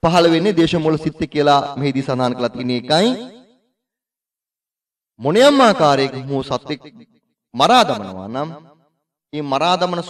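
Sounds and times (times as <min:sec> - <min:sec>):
man speaking: 0:00.0 - 0:03.2, 0:05.2 - 0:08.6, 0:09.3 - 0:10.0.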